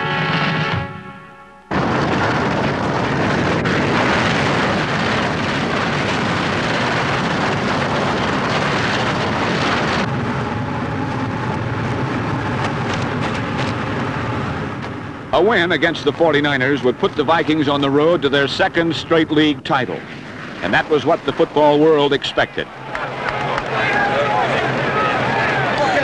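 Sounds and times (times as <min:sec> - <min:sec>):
music: 0:00.0 - 0:01.7
flame burner roaring: 0:01.7 - 0:26.0.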